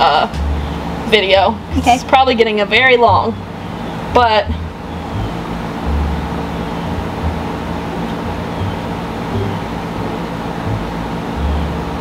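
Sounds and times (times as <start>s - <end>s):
steady mechanical hum: 0.0s - 12.0s.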